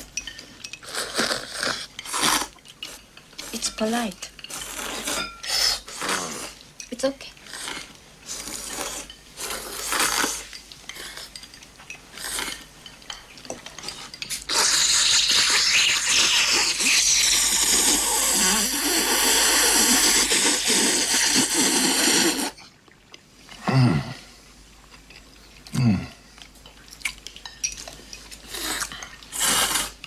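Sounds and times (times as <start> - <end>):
man slurping noodles: 0.8 - 2.5, 14.5 - 22.6, 28.5 - 30.0.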